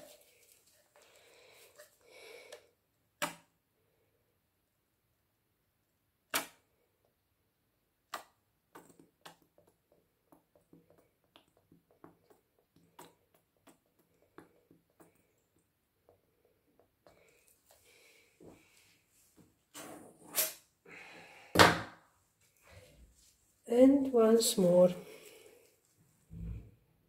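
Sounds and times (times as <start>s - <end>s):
rustling: 0.0s - 2.0s.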